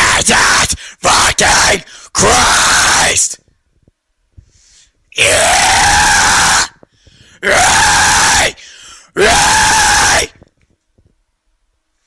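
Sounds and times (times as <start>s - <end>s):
distorted metal screams: 5.2s - 6.8s, 7.4s - 8.6s, 9.2s - 10.4s.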